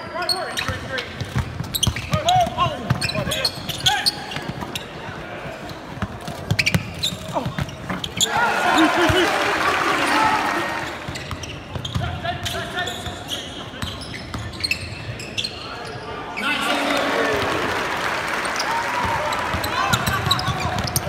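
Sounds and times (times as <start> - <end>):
sneakers squeaking: 0.0 - 9.2, 10.2 - 16.8, 18.4 - 21.0
players shouting in a gym: 8.2 - 11.2.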